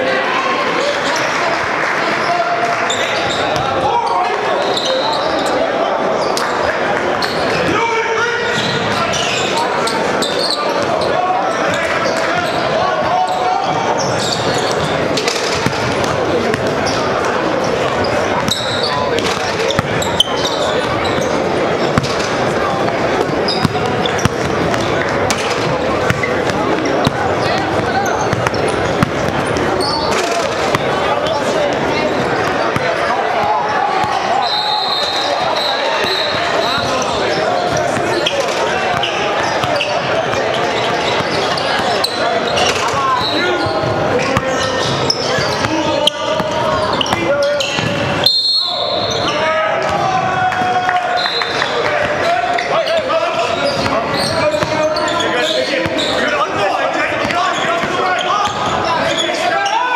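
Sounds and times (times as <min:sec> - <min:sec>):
echoing chatter: 0:00.0 - 0:59.9
shoe squeaks: 0:02.9 - 0:06.5, 0:08.4 - 0:15.9, 0:16.8 - 0:22.3, 0:23.2 - 0:32.9, 0:33.7 - 0:49.6, 0:51.2 - 0:59.9
basketball bouncing on wood floor: 0:19.2 - 0:20.0, 0:23.6 - 0:29.7.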